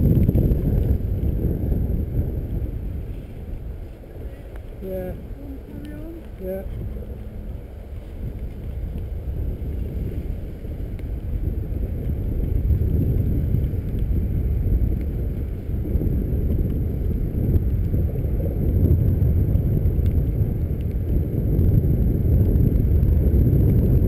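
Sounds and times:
road noise: 0:00.0 - 0:24.0
wind rumbling over microphone: 0:00.0 - 0:24.0.

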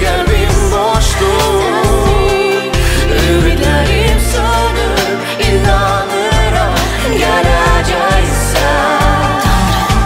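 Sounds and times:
band backing: 0:00.0 - 0:10.0
person singing: 0:00.0 - 0:10.0.

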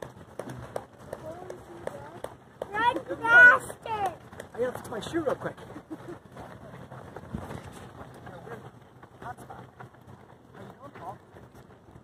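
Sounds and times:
runners' footsteps on asphalt: 0:00.0 - 0:12.0.

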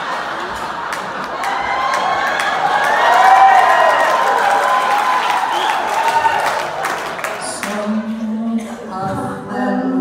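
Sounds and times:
audience cheering and whooping: 0:00.0 - 0:07.4
audience applauding: 0:00.0 - 0:07.8.

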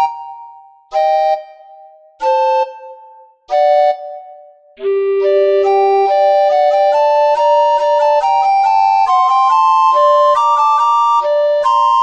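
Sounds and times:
recorder duet: 0:03.6 - 0:10.4.

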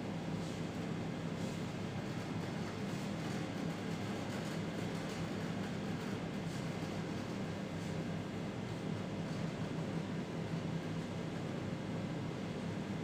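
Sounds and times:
low room hum: 0:00.0 - 0:13.0.

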